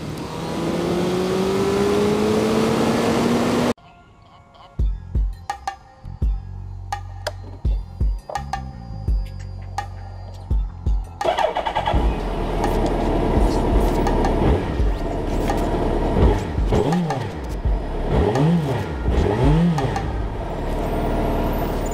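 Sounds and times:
motorcycle engine revving: 0.0 - 3.8, 11.2 - 21.9.

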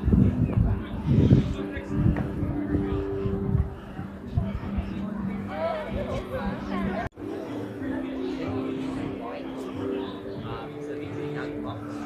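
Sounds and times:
background music: 0.0 - 12.0
indistinct chatter of voices: 0.0 - 12.0.

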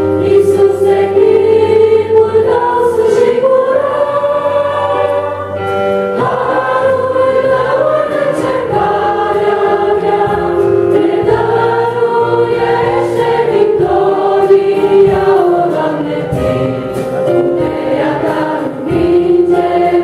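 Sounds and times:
electronic keyboard accompaniment: 0.0 - 20.0
vocal group singing a hymn: 0.0 - 20.0.

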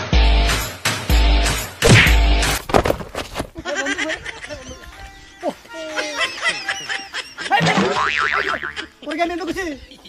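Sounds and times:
comic boing sound effect: 7.6 - 8.8.

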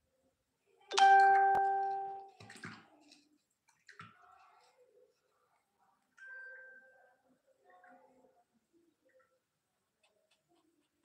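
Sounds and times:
bell-like chime: 0.9 - 2.3.

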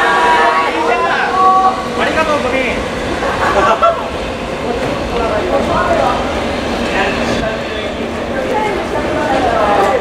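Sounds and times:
train wheels rumbling on rails: 0.0 - 10.0
voices talking: 0.0 - 10.0.

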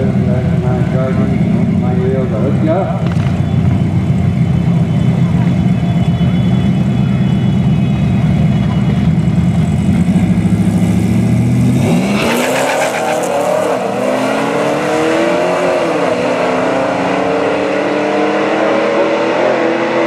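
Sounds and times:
drag car engines revving: 0.0 - 20.0.

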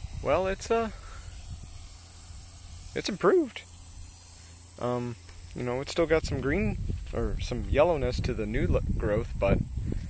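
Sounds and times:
high-pitched insect chorus: 0.0 - 10.0
low microphone rumble: 0.0 - 10.0.

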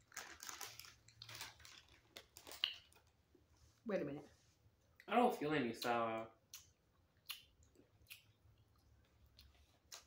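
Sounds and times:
person chewing gummy candy: 0.0 - 3.2, 5.8 - 10.0.

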